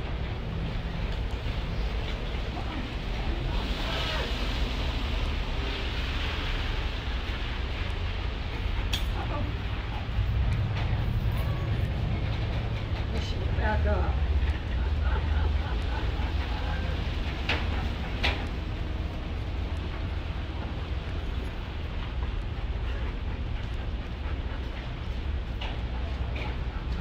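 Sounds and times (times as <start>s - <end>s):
low rumble: 0.0s - 27.0s.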